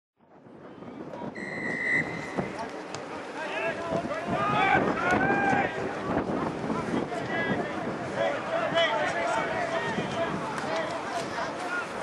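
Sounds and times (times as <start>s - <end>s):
wind on microphone: 0.2s - 3.0s, 3.6s - 12.0s
spectators' voices: 0.4s - 12.0s
referee's whistle: 1.4s - 2.4s
spectators shouting: 2.3s - 12.0s.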